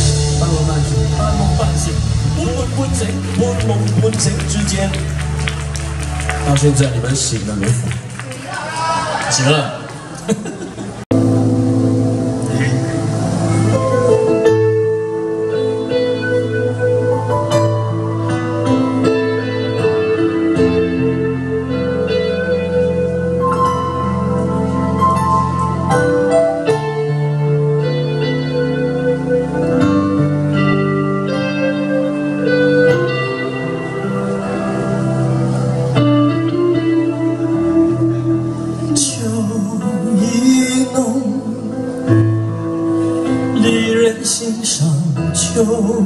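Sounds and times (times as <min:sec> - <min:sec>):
faint stage chatter: 0:00.0 - 0:14.3, 0:31.3 - 0:39.7
sustained keyboard chord: 0:11.1 - 0:44.5.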